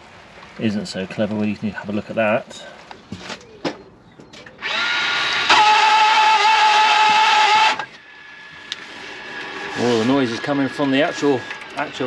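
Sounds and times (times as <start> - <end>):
parking brake motor screeching: 4.6 - 12.0.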